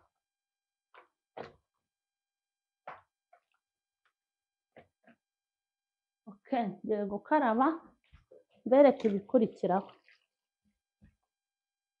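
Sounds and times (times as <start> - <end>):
hands handling food in plastic bowl: 8.0 - 11.4.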